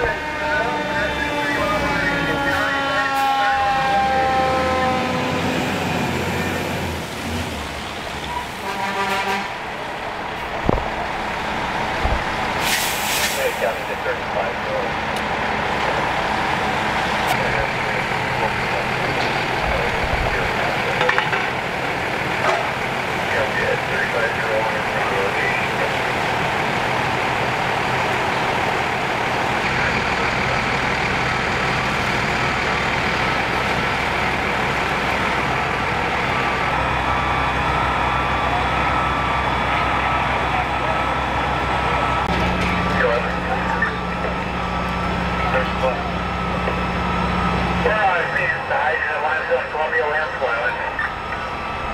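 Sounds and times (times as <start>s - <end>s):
diesel engines droning: 0.0s - 51.9s
air hiss burst: 12.6s - 13.8s.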